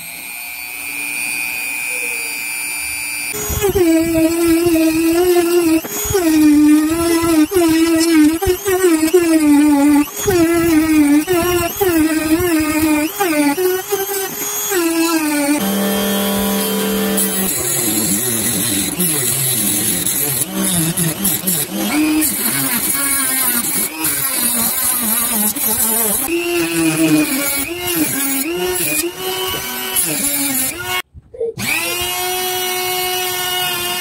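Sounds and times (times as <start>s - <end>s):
cutting disc cutting wood: 0.0s - 31.0s, 31.6s - 34.0s
rotary tool whining: 0.0s - 31.0s, 31.6s - 34.0s.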